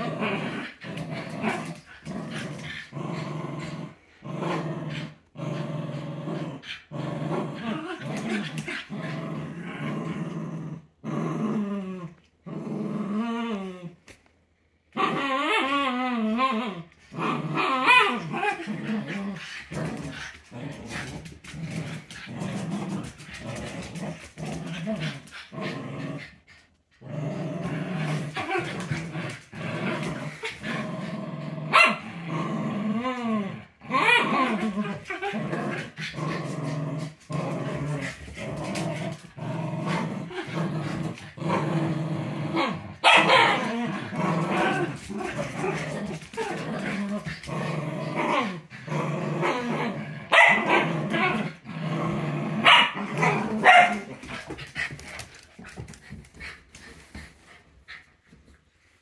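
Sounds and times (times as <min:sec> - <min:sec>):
small dogs growling: 0:00.0 - 0:14.0, 0:15.0 - 0:58.1.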